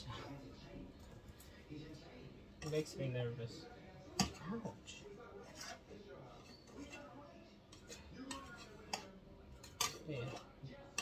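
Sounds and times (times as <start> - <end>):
utensil scraping metal pan: 5.4 - 11.0.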